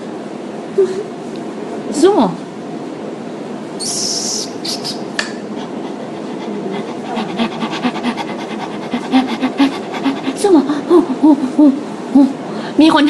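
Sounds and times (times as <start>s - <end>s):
quick rhythmic panting: 4.5s - 11.5s.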